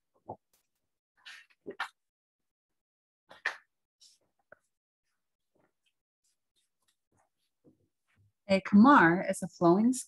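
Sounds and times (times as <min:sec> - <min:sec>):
faint rustling of book pages: 0:03.3 - 0:08.3.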